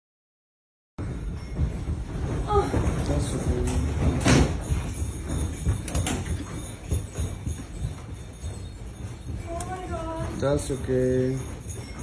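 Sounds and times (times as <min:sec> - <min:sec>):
fittings and glass rattling: 0:01.0 - 0:12.0.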